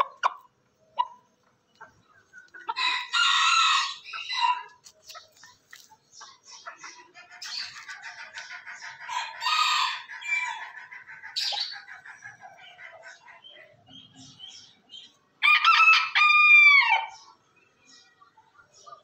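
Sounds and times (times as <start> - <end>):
small birds chirping: 0.0 - 15.4, 17.0 - 19.0
rooster crowing: 2.8 - 4.7, 9.1 - 10.6, 15.4 - 17.1.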